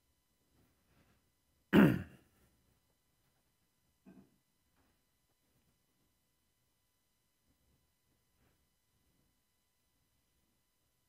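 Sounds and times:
man clearing his throat: 0:01.7 - 0:02.3.

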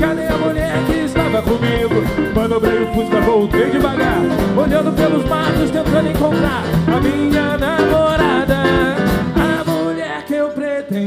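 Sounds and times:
live country-rock band: 0:00.0 - 0:11.0
person singing: 0:00.0 - 0:11.0.

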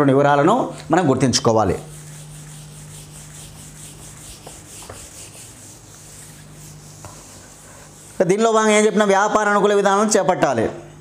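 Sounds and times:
duster rubbing on whiteboard: 0:01.2 - 0:09.3.

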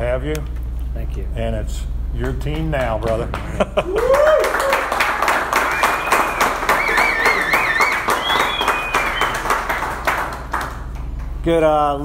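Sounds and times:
people applauding: 0:02.2 - 0:11.4
high wavering call: 0:05.3 - 0:10.0.

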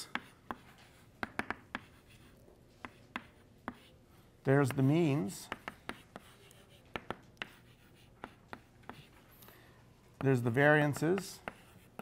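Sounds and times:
chalk tapping on blackboard: 0:00.0 - 0:03.9, 0:04.6 - 0:09.1, 0:10.2 - 0:12.0.

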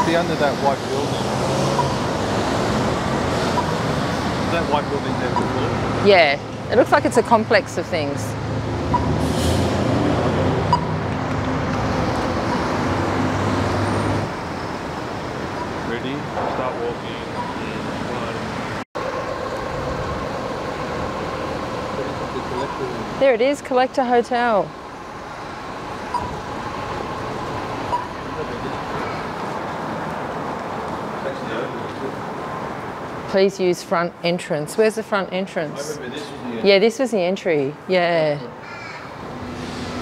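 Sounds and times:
city street traffic: 0:00.0 - 0:40.0
road noise: 0:00.0 - 0:40.0
vehicle engine running: 0:10.1 - 0:31.4.

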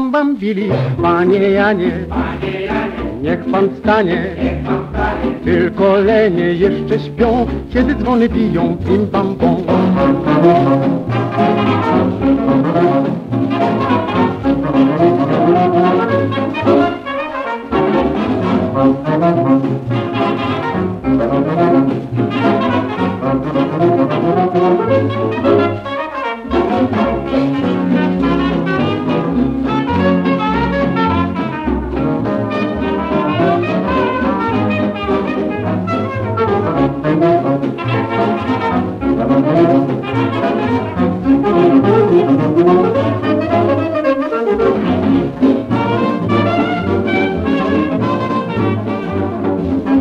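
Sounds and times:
dance orchestra playing foxtrot: 0:00.0 - 0:50.0.

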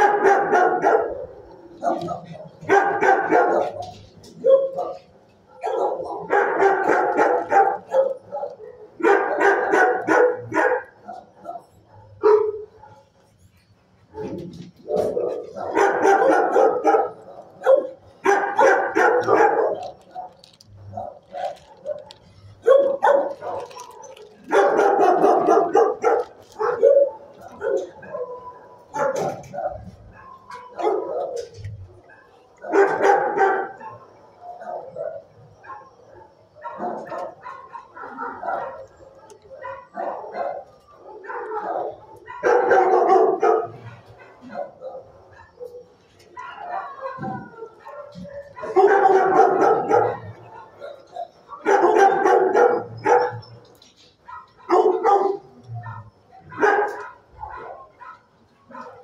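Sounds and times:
dogs barking: 0:00.0 - 0:59.0.

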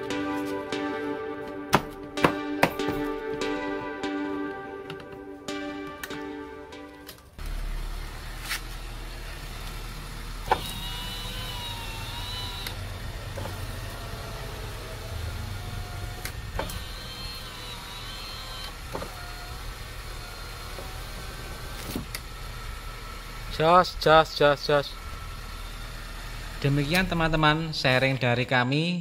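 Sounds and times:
power window motor whine: 0:07.4 - 0:23.5, 0:24.7 - 0:28.2.

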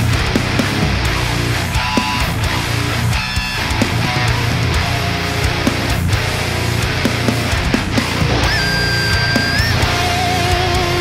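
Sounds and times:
distorted metal guitar riff: 0:00.0 - 0:11.0.

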